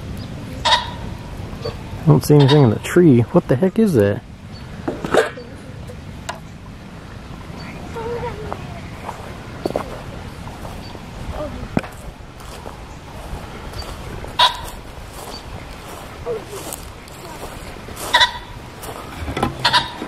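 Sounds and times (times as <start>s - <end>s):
low outdoor rumble: 0.0s - 20.0s
short nasal animal calls: 14.4s - 14.7s, 18.1s - 18.5s.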